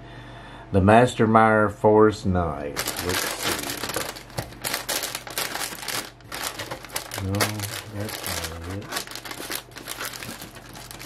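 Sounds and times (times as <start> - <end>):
paper sheet rustling: 2.8 - 11.0.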